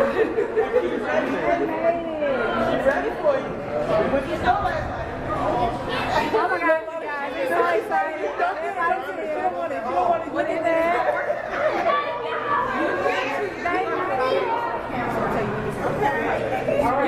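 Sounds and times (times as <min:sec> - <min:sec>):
group of people talking: 0:00.0 - 0:17.0.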